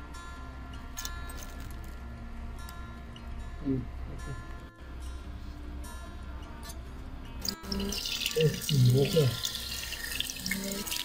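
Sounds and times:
potato slices sizzling in oil: 0:07.5 - 0:11.0.

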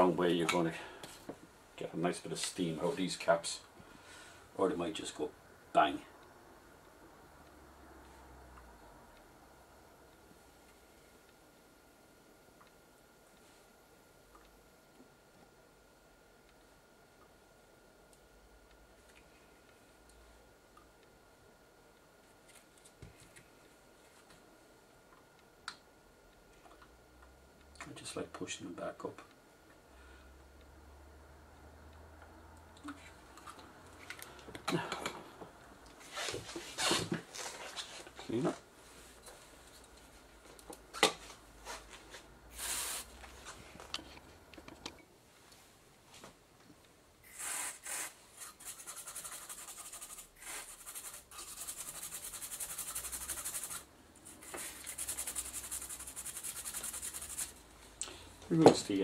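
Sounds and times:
high scrubbing hiss: 0:42.4 - 0:43.3, 0:47.2 - 0:57.6.

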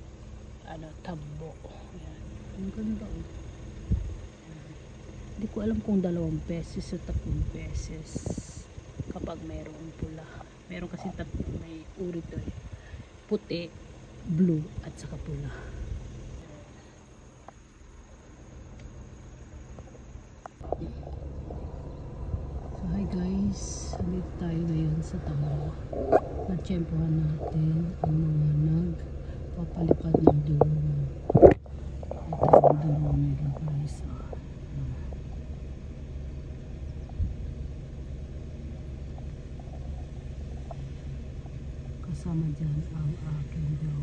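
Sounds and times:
insects chirping: 0:00.0 - 0:44.0
low rumble: 0:00.0 - 0:44.0.

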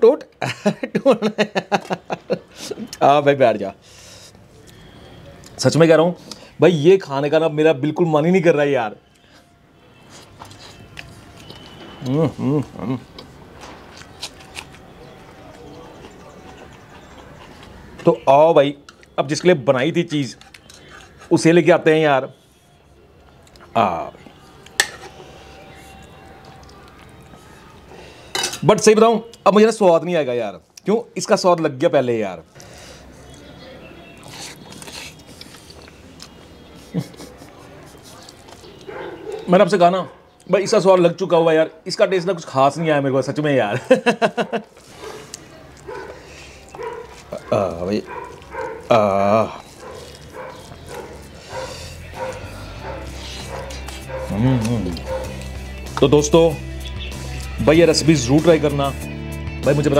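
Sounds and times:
man humming mmm: 0:12.1 - 0:13.1, 0:53.0 - 0:55.1
ladle clinking on a steel plate: 0:24.8 - 0:25.1, 0:28.3 - 0:28.6.

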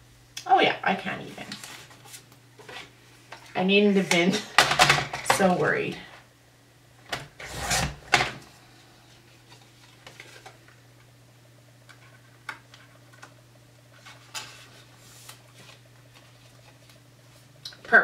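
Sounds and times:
low steady hum: 0:00.0 - 0:18.0
paper scraping slide: 0:07.4 - 0:08.0.

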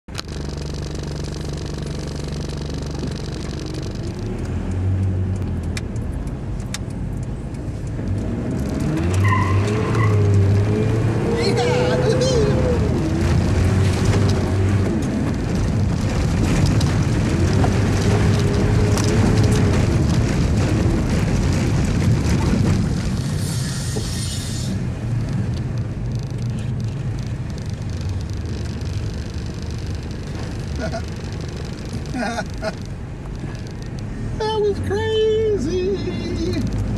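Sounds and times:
van engine rumbling: 0:00.1 - 0:36.9
person laughing: 0:11.3 - 0:12.9, 0:30.7 - 0:31.1, 0:32.1 - 0:32.8.

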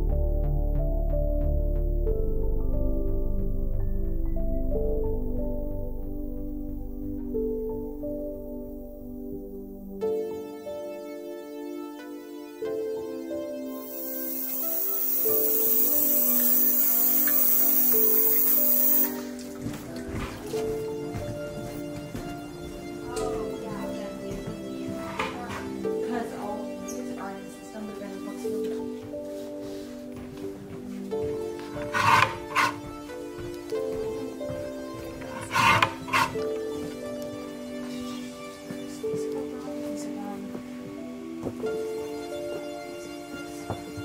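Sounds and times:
soft background music: 0:00.0 - 0:44.0
paper cutter slicing paper: 0:31.8 - 0:32.8, 0:35.3 - 0:36.4.

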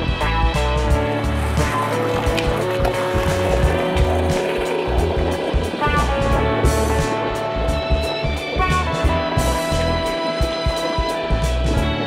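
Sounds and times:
instrumental music with bass line: 0:00.0 - 0:12.0.

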